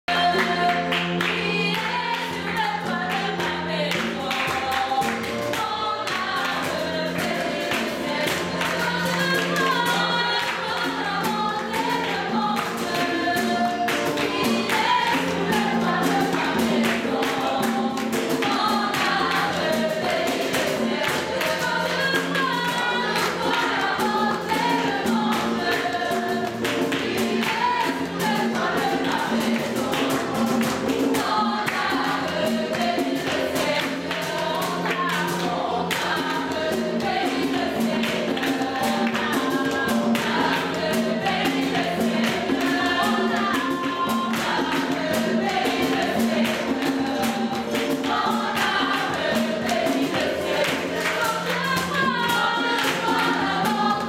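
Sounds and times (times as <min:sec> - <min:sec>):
group singing gospel song: 0:00.0 - 0:54.0
percussion beat: 0:00.1 - 0:54.0.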